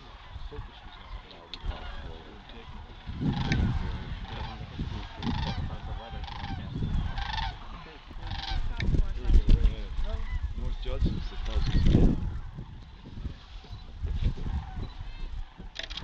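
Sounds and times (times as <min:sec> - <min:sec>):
low rumbling on microphone: 0:00.0 - 0:15.8
cranes calling: 0:00.0 - 0:16.0.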